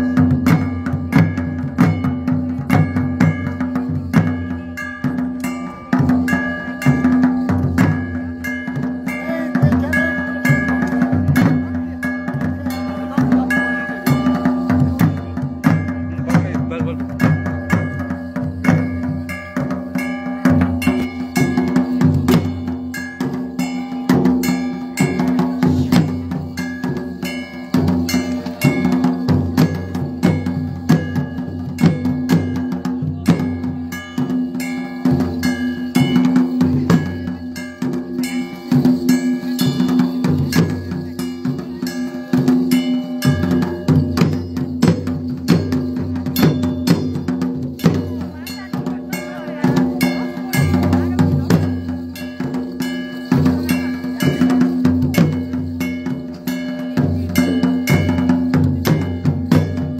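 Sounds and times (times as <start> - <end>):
clanging metallic percussion: 0.0 - 59.9
drum strokes: 0.0 - 59.9.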